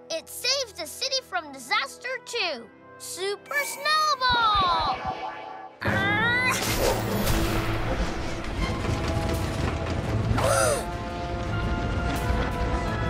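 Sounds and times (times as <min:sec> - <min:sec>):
magical swoop: 0:03.6 - 0:08.8
loud crash with rumble: 0:07.0 - 0:10.4.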